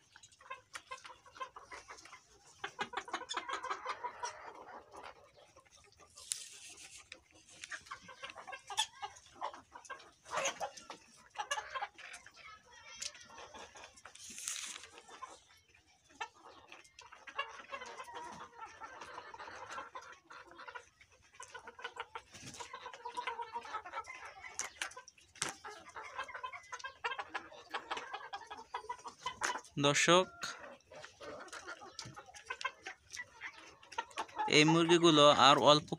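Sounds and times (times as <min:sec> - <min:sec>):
chickens clucking: 0:00.0 - 0:35.9.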